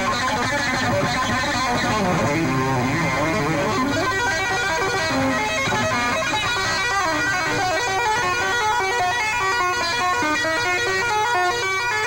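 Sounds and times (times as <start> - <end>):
electric guitar fast single notes: 0.0 - 12.0.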